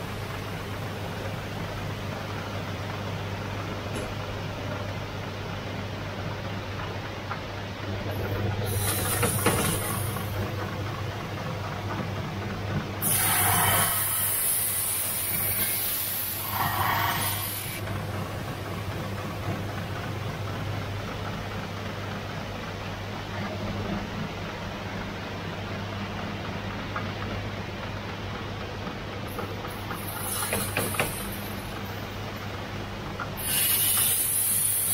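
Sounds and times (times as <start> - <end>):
harsh hissing scrape: 13.0 - 17.8, 33.4 - 34.9.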